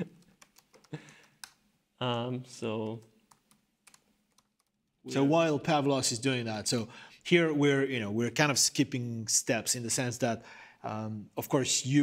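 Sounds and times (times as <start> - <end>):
keyboard typing: 0.0 - 1.6, 2.8 - 5.0.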